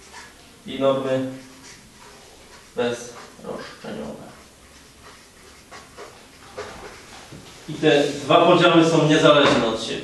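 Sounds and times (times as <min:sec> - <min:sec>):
marker squeaking on paper: 0:00.0 - 0:07.4.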